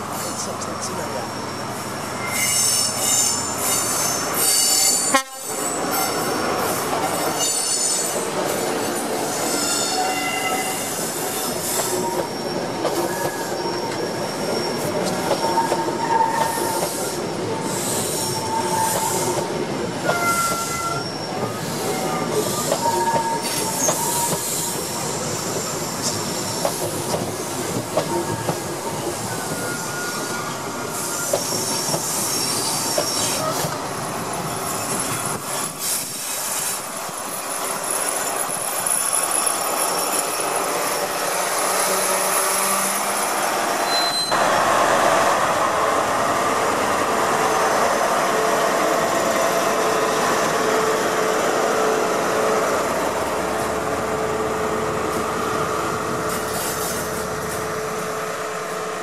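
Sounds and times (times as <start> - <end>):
diesel train passing: 0.0 - 59.0
high wavering wheel squeals: 1.4 - 6.4, 8.9 - 19.4, 20.0 - 26.7, 28.0 - 33.6, 37.3 - 44.4.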